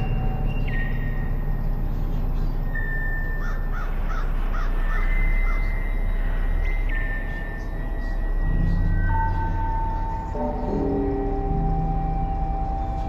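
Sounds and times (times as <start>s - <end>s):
bird calling: 0.0s - 13.0s
faint high whine: 0.0s - 13.0s
steady low rumble: 0.0s - 13.0s.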